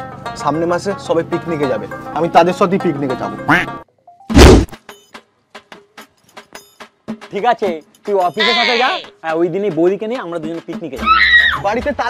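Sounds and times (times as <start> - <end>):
person shouting: 8.4 - 9.1.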